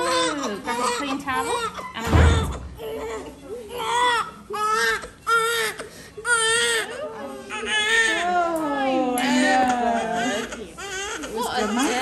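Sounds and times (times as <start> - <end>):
newborn baby crying: 0.0 - 8.5, 9.2 - 12.0.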